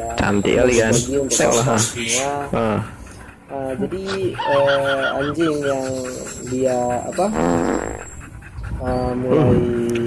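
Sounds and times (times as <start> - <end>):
dog making buzzy vocal sound: 5.6 - 8.3.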